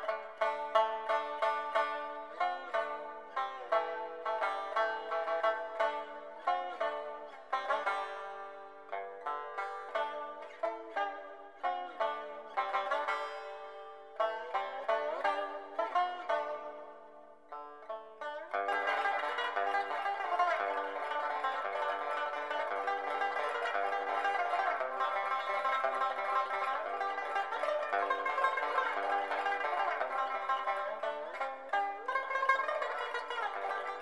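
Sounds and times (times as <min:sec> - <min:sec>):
plucked string instrument melody: 0:00.0 - 0:34.0.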